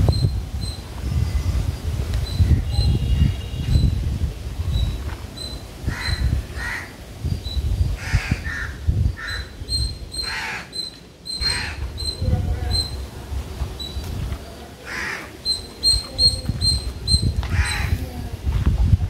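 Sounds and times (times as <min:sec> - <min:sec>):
crows cawing: 0:05.9 - 0:07.0, 0:08.0 - 0:09.6, 0:10.2 - 0:11.8, 0:14.8 - 0:15.4, 0:17.5 - 0:18.0.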